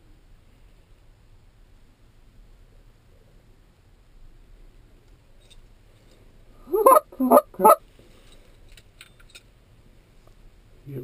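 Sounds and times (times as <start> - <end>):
goose honking: 6.7 - 7.8.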